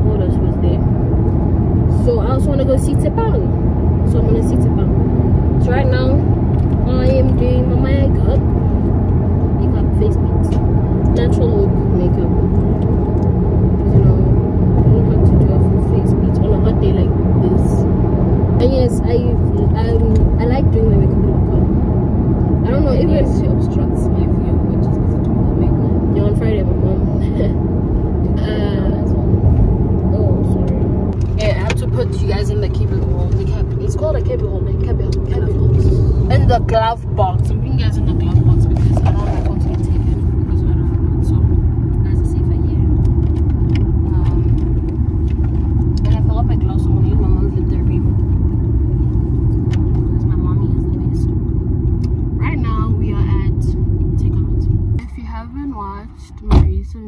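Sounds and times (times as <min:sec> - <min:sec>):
voices: 0:00.0 - 0:01.2, 0:01.8 - 0:48.5, 0:49.4 - 0:57.0
car interior road rumble: 0:00.0 - 0:57.0.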